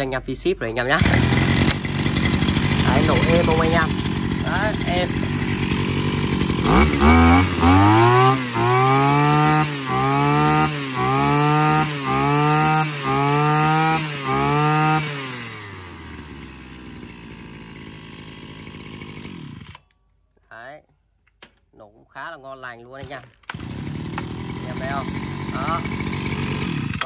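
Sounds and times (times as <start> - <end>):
brush cutter engine revving: 0.9 - 19.9, 23.0 - 27.0.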